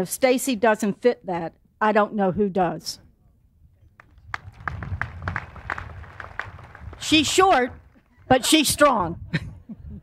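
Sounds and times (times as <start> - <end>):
audience clapping: 4.0 - 8.1.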